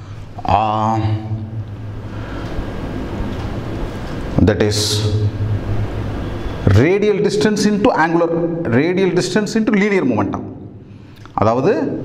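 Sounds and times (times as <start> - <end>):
low hum: 0.0 - 11.3.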